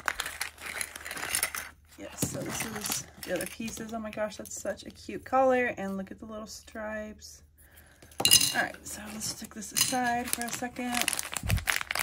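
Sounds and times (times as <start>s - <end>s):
paper bag crinkling: 0.0s - 3.8s, 10.2s - 12.0s.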